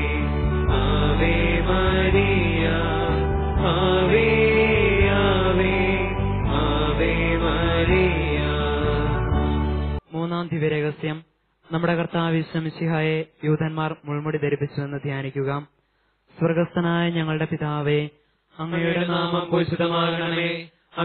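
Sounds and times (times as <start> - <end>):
devotional chant sung over music: 0.0 - 9.7, 18.6 - 21.0
man speaking: 10.1 - 15.7.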